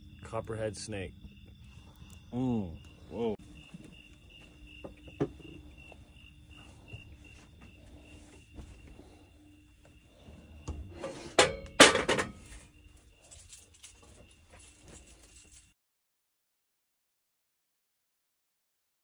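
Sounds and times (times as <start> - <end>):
crickets chirping: 0.0 - 15.8
metal grill pan clanking: 10.8 - 12.6.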